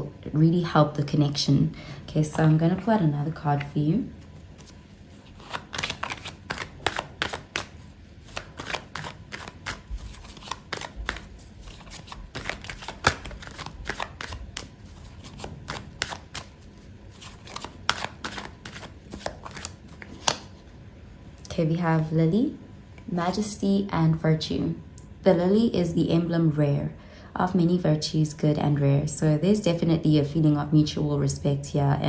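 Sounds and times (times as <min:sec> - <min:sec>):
cards being shuffled: 0:03.6 - 0:20.6.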